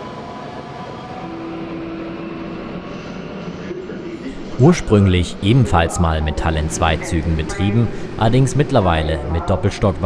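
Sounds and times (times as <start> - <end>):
train rumble and hiss: 0.0 - 10.0.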